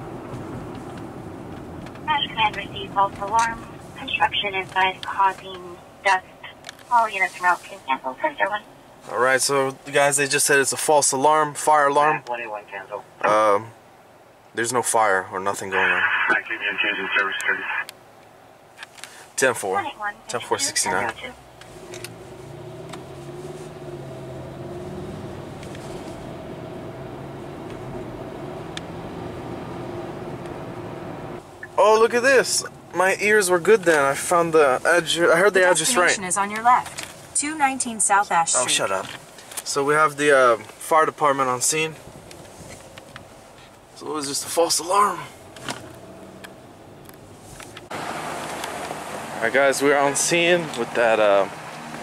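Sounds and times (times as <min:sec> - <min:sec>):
car engine and road noise: 0:00.0 - 0:52.0
outdoor noise: 0:00.0 - 0:52.0.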